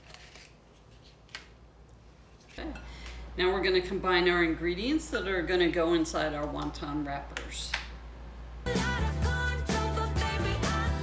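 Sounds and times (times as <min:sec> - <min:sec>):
wrapper cups rustling: 0:00.0 - 0:01.4.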